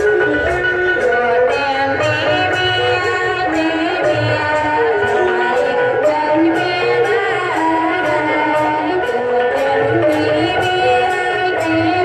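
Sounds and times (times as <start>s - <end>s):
sliding melody of held notes: 0.0s - 12.0s.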